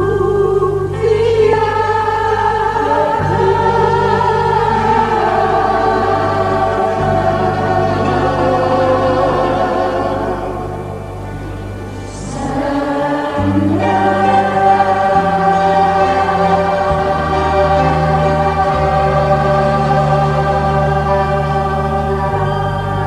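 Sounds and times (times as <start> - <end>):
church choir singing a hymn: 0.0 - 23.0.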